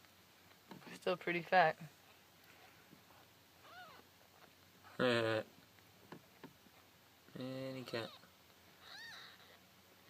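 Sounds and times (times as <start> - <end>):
kitten mewing: 3.6 - 4.0, 7.9 - 9.6.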